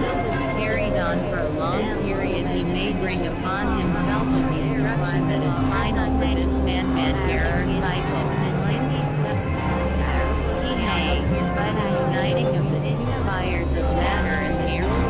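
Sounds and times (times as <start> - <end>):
low synthesizer drones: 0.0 - 15.0
warbling pitch sweeps: 0.0 - 15.0.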